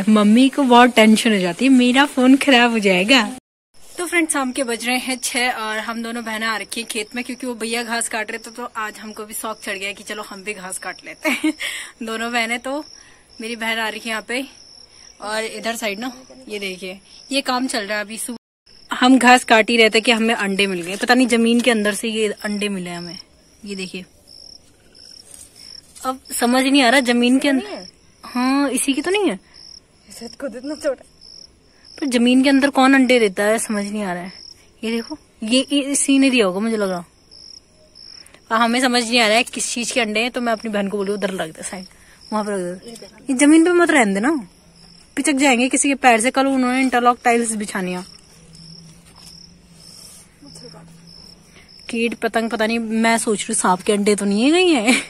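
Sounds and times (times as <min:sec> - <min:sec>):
cricket chirping: 0:00.1 - 0:55.0
faint low hum: 0:37.7 - 0:55.0.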